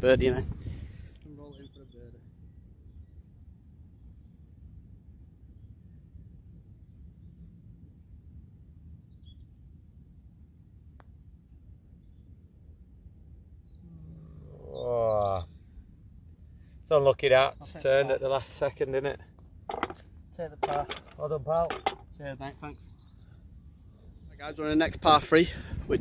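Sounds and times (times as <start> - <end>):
low wind rumble: 0.0 - 26.0
putter striking golf ball: 19.7 - 22.2.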